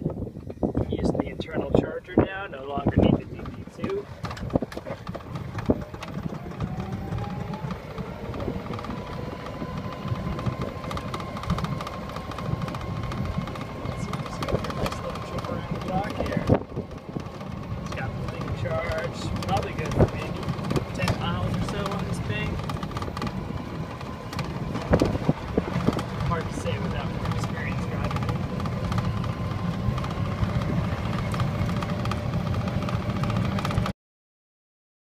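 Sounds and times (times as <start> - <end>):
tyres rumbling on road: 0.0 - 33.9
knocks and rattles over bumps: 2.8 - 33.9.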